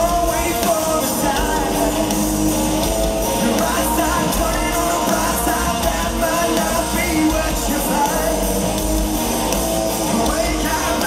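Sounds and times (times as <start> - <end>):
lead singer singing: 0.0 - 2.5, 3.2 - 8.9, 10.0 - 11.0
live rock band: 0.0 - 11.0.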